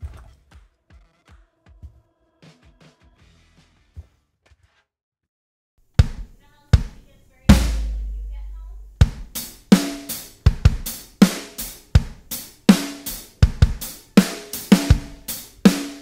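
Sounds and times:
drum hits: 6.0 - 16.0
drum kit beat: 6.0 - 16.0.

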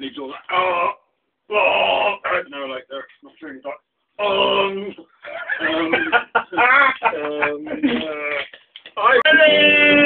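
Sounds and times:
person laughing: 5.3 - 8.2.

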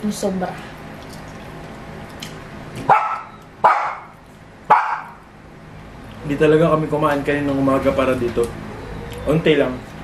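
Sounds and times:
dog barking: 2.9 - 5.2.

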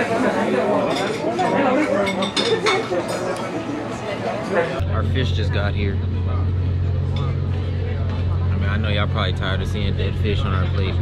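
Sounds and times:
diners talking: 0.0 - 11.0
clinking tableware and cutlery: 0.9 - 3.2.

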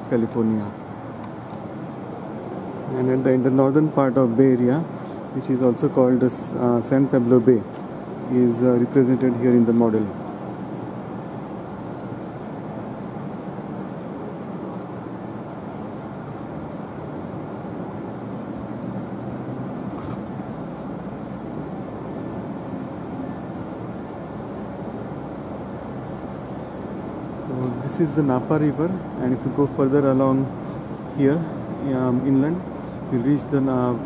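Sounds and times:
low hall hum: 0.0 - 34.0.

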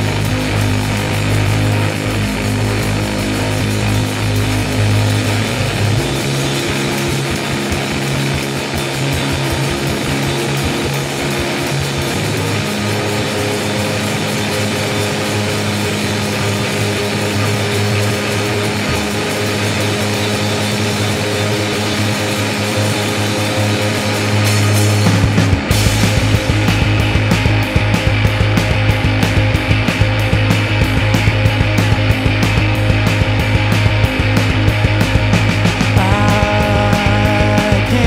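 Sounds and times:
bass guitar notes: 0.0 - 38.0
live rock band instrumental: 0.0 - 38.0.

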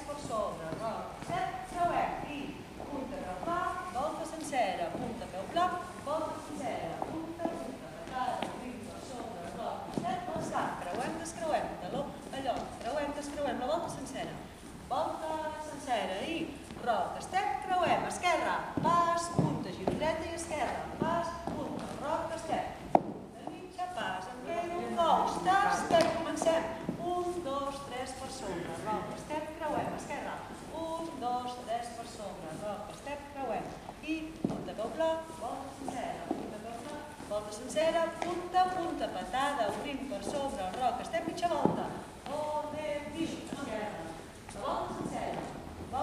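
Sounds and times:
woman talking in a hall: 0.0 - 46.0
boot heels on stage floor: 17.9 - 31.3, 31.9 - 46.0.

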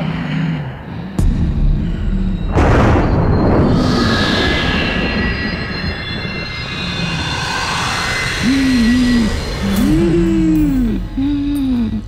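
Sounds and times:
eerie rushing drone: 0.0 - 12.0
high ringing tones sliding down: 2.9 - 10.8
wavering wails: 4.4 - 12.0.

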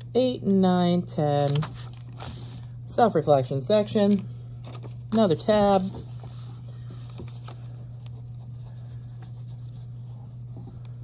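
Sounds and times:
steady low hum: 0.0 - 11.0
paper rustling and rubbing: 4.6 - 10.7.

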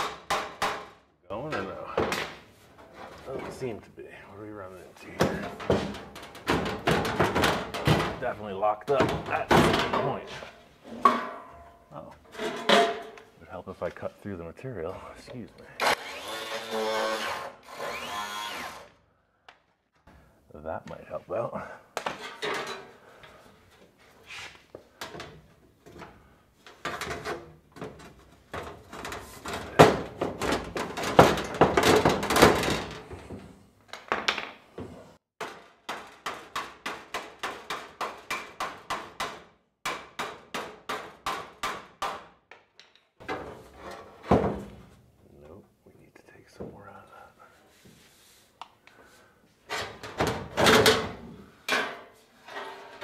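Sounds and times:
metal panel clanking and scraping: 10.9 - 13.2.

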